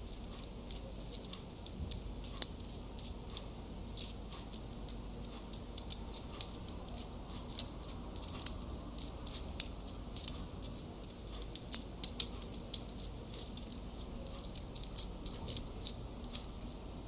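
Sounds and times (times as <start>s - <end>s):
fingers handling small object: 0.0s - 16.8s.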